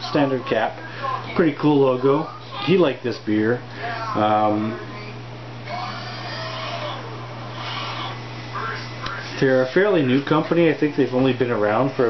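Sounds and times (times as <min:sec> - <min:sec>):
ceiling fan hum and hiss: 0:00.0 - 0:12.0.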